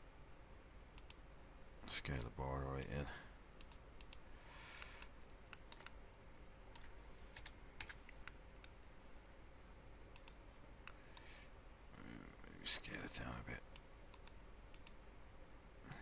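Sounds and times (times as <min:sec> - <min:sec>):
keyboard and mouse clicks: 0:01.0 - 0:01.2, 0:03.6 - 0:04.2, 0:04.8 - 0:06.0, 0:06.7 - 0:08.8, 0:10.1 - 0:11.3, 0:13.7 - 0:15.0
person humming um: 0:11.9 - 0:12.7.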